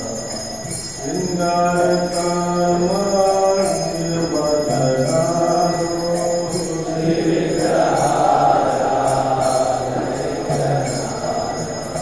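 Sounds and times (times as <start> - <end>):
mantra chanted in held notes: 0.0 - 12.0.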